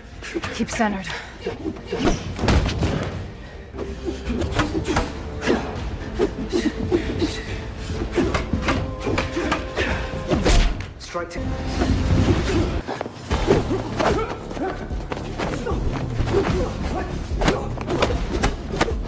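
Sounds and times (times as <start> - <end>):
dramatic score music: 0.0 - 19.0.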